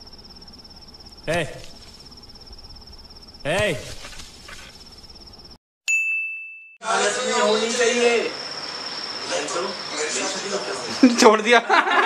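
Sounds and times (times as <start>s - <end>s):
crickets chirping: 0.0s - 5.6s, 6.8s - 12.0s
bell-like ding: 5.9s - 6.8s.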